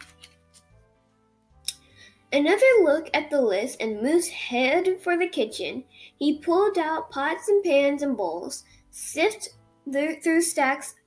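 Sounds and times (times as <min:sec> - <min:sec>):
paper rustle: 0:00.0 - 0:00.7
book page turning: 0:00.0 - 0:00.8
faint background music: 0:00.0 - 0:11.0.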